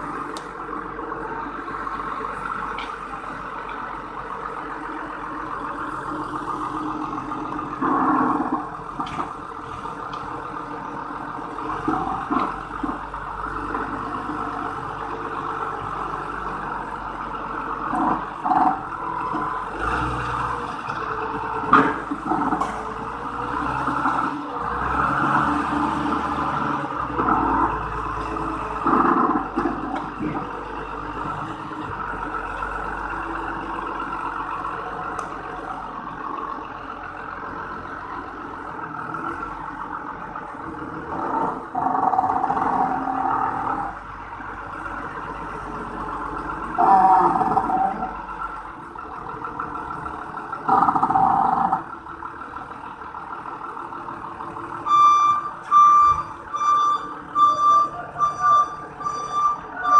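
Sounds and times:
forklift engine under load: 0:00.0 - 0:59.9
reversing alarm beeping: 0:54.7 - 0:59.9.

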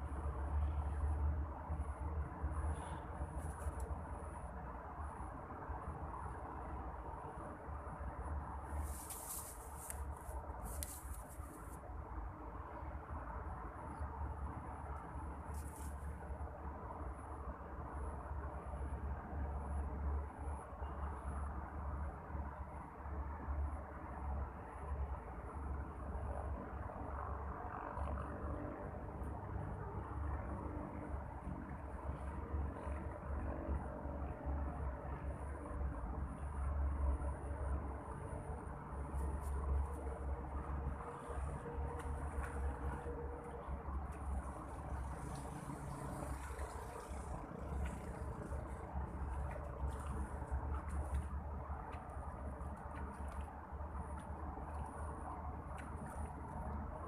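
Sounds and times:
low rumble and hiss: 0:00.0 - 0:57.0.

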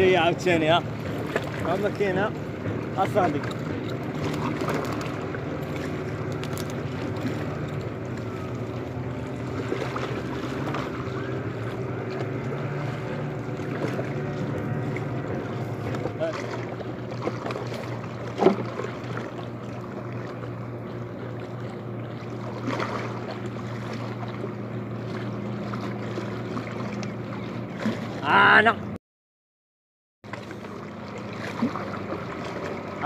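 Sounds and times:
low engine hum: 0:00.0 - 0:29.0, 0:30.2 - 0:33.0.

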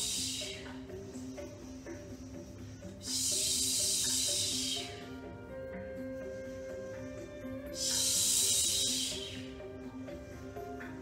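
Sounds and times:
background music: 0:00.0 - 0:11.0
woman hissing exhale: 0:07.8 - 0:09.6.

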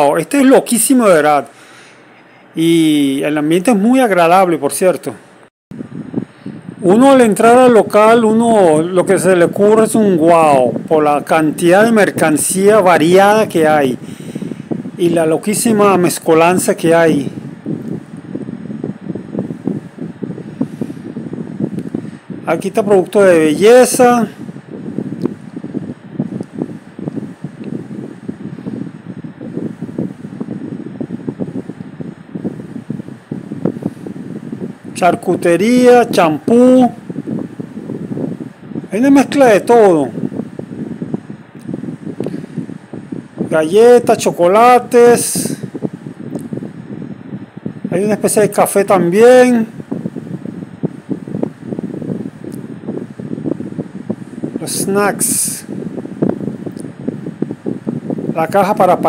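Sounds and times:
microphone rustling and buffeting: 0:05.2 - 0:59.0.

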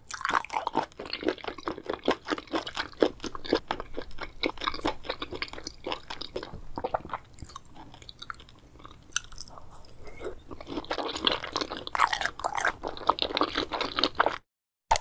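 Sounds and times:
person chewing food: 0:00.0 - 0:15.0.

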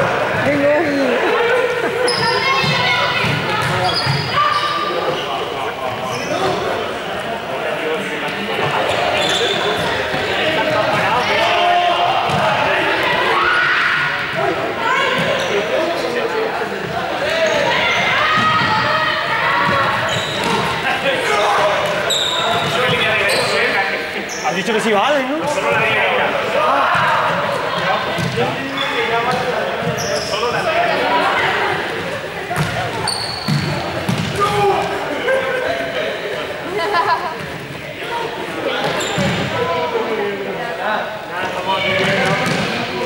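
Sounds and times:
students talking and calling out: 0:00.0 - 0:43.0
sneaker squeaks on court floor: 0:02.0 - 0:06.7, 0:08.8 - 0:10.2, 0:19.6 - 0:20.8, 0:21.4 - 0:24.7, 0:28.1 - 0:30.6, 0:32.6 - 0:34.5, 0:38.8 - 0:39.6, 0:41.9 - 0:42.8.

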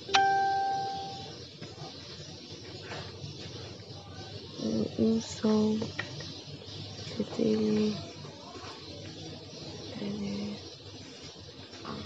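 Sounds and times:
bell-like chime: 0:00.1 - 0:01.3.

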